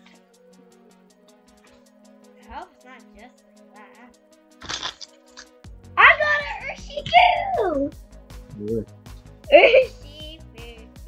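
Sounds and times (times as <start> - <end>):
background music with held tones: 0.0 - 11.0
trading cards swishing: 4.6 - 5.6.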